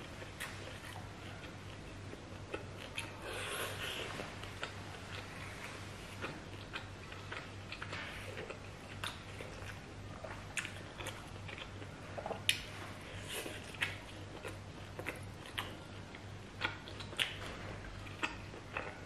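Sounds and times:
wet chewing: 0.0s - 19.0s.

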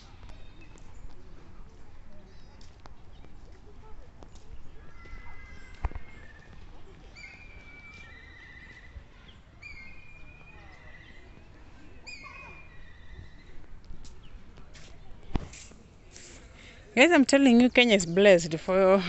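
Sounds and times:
birds singing: 4.3s - 15.1s.

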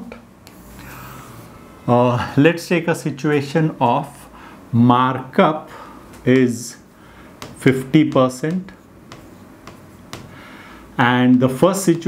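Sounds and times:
marker pen writing on whiteboard: 0.4s - 0.8s, 6.1s - 10.5s, 11.1s - 12.0s.

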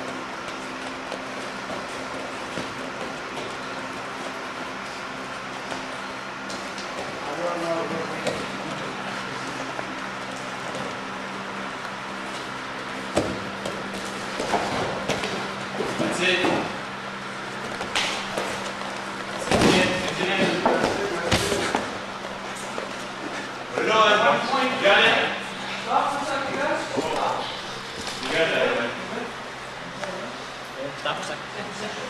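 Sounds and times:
room hum and hiss: 0.0s - 32.0s
grapplers scuffling on a mat: 12.2s - 16.8s.

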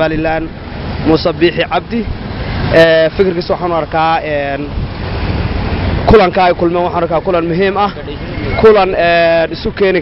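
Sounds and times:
man speaking into a microphone: 0.0s - 4.8s, 6.0s - 10.0s
street traffic hum: 0.0s - 10.0s.

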